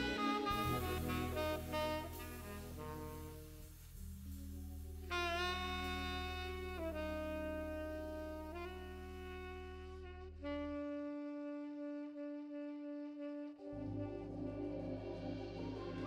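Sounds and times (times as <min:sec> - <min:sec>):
organ chords: 0:00.0 - 0:11.0, 0:13.2 - 0:16.0
saxophone long notes: 0:00.0 - 0:16.0
pulsing bass line: 0:13.7 - 0:16.0.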